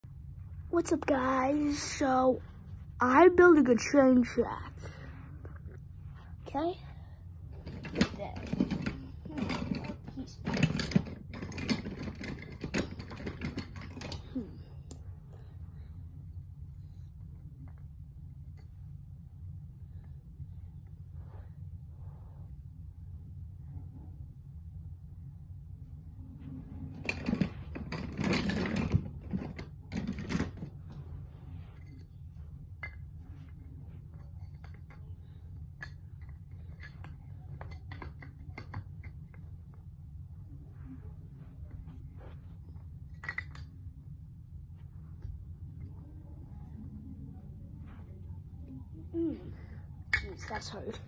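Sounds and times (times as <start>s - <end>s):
steady low hum: 0.0s - 51.0s
toy train track clattering: 7.6s - 14.2s, 27.0s - 30.7s
clicks and knocks of handling: 34.1s - 39.5s.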